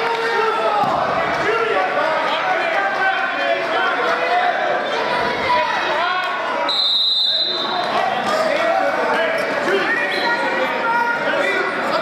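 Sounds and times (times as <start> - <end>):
people calling out in a gymnasium: 0.0 - 12.0
referee whistle blast: 6.6 - 7.8.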